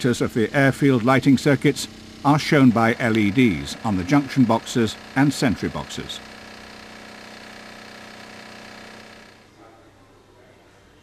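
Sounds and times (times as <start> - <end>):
steady machine hum: 0.0 - 9.6.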